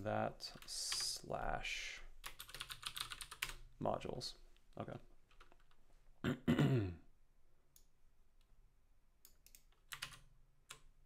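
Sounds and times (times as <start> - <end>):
man clearing his throat: 6.2 - 7.1.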